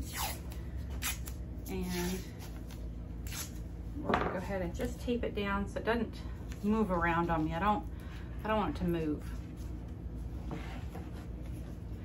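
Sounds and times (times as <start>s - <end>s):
tape pulled and torn: 0.0s - 3.6s.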